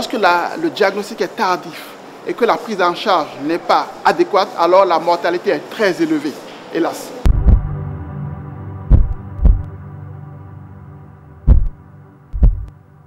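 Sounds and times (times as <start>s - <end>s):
steady low drone: 7.2s - 13.0s
heartbeat thumps: 7.3s - 7.8s, 8.8s - 9.7s, 11.4s - 12.8s.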